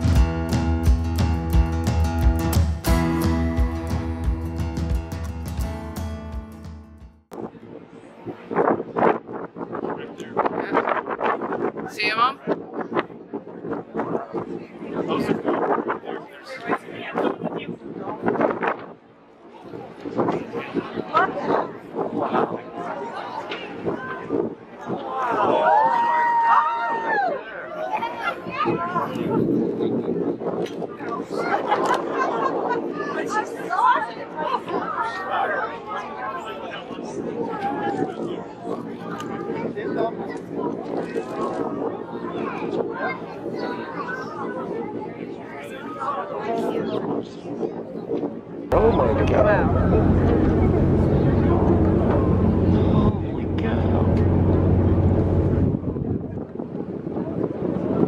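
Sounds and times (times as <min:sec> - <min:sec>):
wind buffeting microphone: 0:07.3 - 0:58.0
people chattering excitedly: 0:07.4 - 0:58.0
passengers' voices: 0:27.1 - 0:58.0
boat engine droning: 0:48.7 - 0:56.4.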